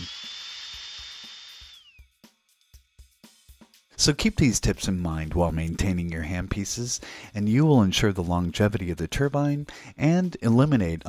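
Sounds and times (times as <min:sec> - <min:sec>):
compressed air hissing: 0:00.0 - 0:02.0
high whistle: 0:00.0 - 0:02.2.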